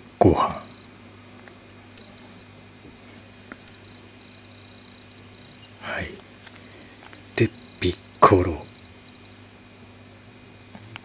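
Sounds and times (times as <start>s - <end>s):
faint high whine: 0.0s - 11.0s
low electrical hum: 0.0s - 11.0s.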